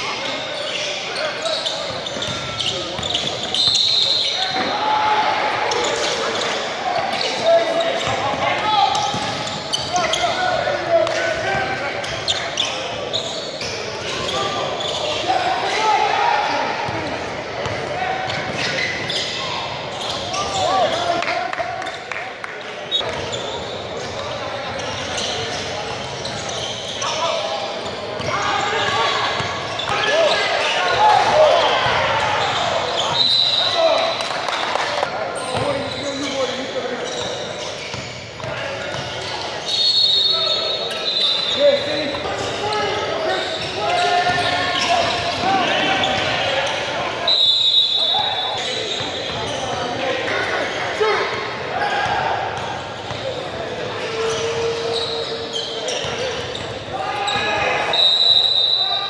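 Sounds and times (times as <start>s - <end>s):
basketball bouncing on court: 2.1s - 3.5s, 8.0s - 9.9s, 17.6s - 18.8s.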